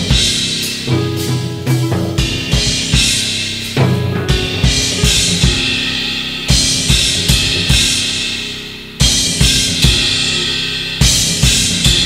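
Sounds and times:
bass drum strokes: 0.0s - 12.0s
cymbal washes: 0.0s - 12.0s.

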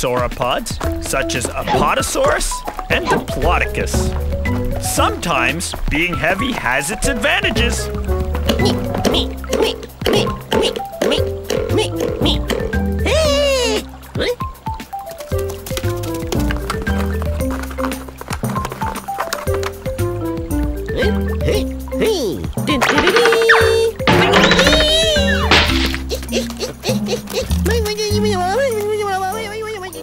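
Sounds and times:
background music with bass: 0.0s - 23.0s, 23.6s - 30.0s
squeaky cartoon vocal chatter: 22.7s - 27.6s
comic whack: 24.1s - 26.1s.

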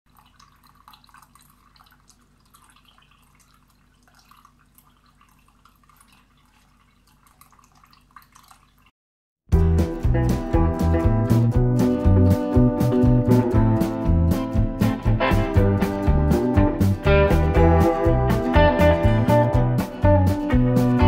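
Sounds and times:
fountain water trickling: 0.1s - 8.9s
loud music: 9.5s - 21.0s.

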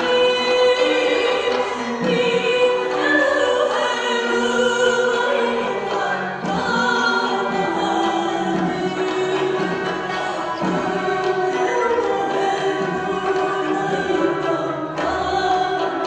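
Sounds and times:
folk ensemble with plucked strings: 0.0s - 16.0s
woman singing: 0.0s - 16.0s.

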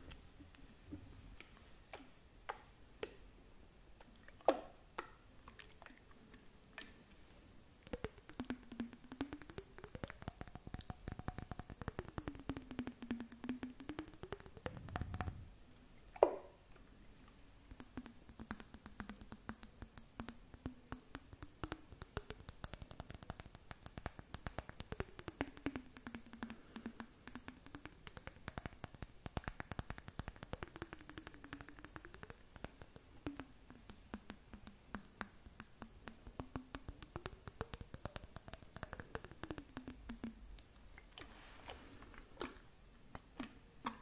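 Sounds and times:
low hollow sliding tone: 14.7s - 15.6s.

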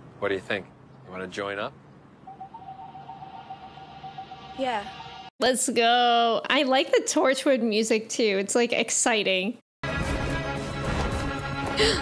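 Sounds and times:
held electronic note: 2.3s - 5.3s.

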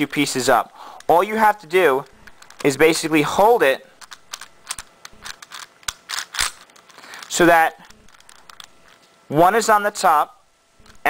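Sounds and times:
plastic puzzle cube clicking: 4.0s - 8.7s.

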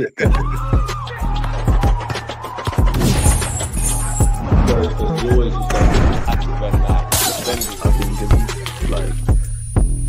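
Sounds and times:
music with deep bass: 0.0s - 10.0s
glass shattering: 2.9s - 4.4s, 7.1s - 8.8s.

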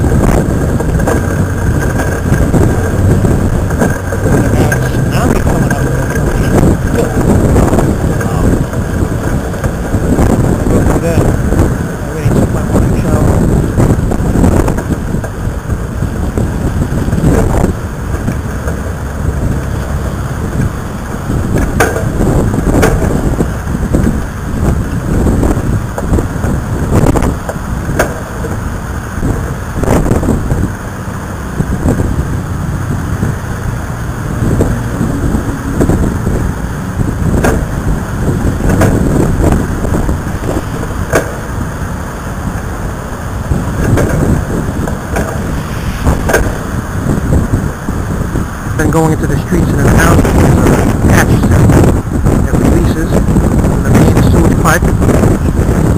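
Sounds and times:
road traffic: 0.0s - 55.9s
wind rumbling on microphone: 0.0s - 55.9s.

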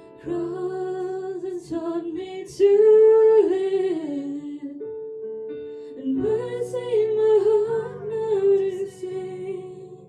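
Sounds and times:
soft sustained keyboard: 0.0s - 10.0s
woman singing worship song: 0.1s - 4.8s, 5.9s - 10.0s.

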